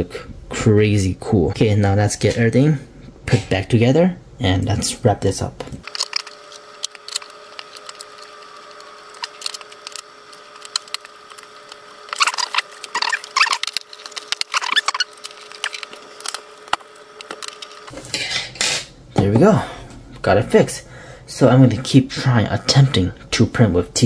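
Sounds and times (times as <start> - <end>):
faint steady hum: 0.0 - 24.0
plastic parts clicking and rattling: 5.8 - 17.9.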